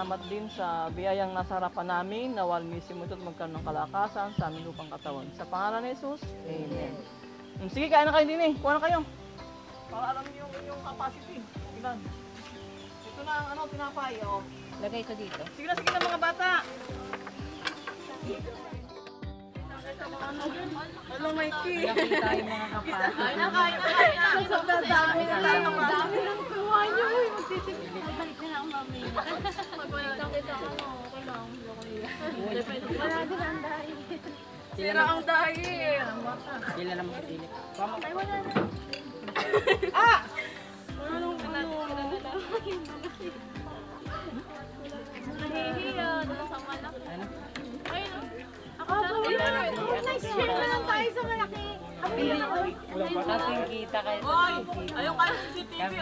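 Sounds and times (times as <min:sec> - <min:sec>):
group chatter: 0:00.0 - 0:56.0.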